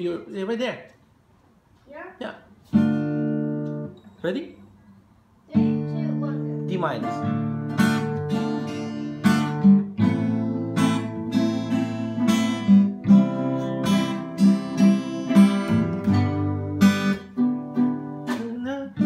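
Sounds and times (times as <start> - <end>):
acoustic guitar strumming chords: 2.7 - 4.0, 5.5 - 19.0.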